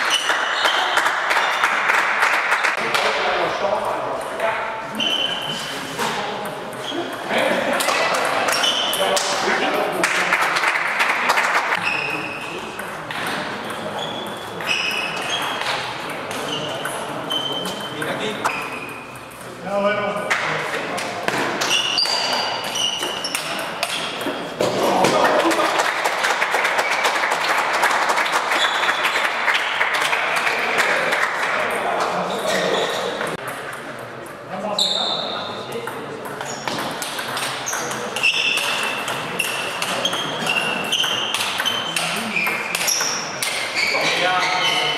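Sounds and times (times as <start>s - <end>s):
crowd noise: 0.0s - 44.9s
voices in hall: 0.0s - 44.9s
table tennis ball pinging: 12.7s - 19.6s, 21.2s - 25.6s, 35.8s - 43.7s
short high-pitched squeaks: 16.5s - 19.0s, 21.6s - 23.6s, 37.6s - 43.2s, 43.8s - 44.9s
ping pong ball clicking: 35.9s - 38.0s.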